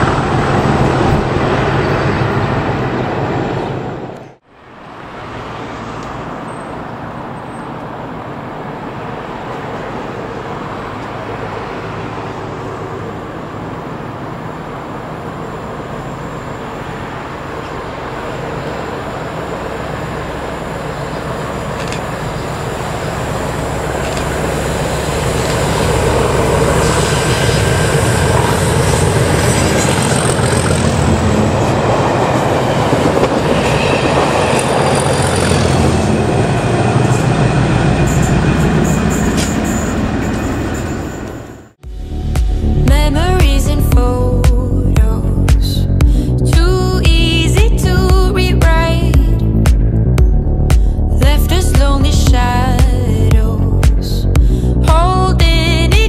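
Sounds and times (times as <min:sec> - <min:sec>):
train wheel and rail noise: 0:00.0 - 0:49.4
diesel locomotive engines: 0:00.0 - 0:56.0.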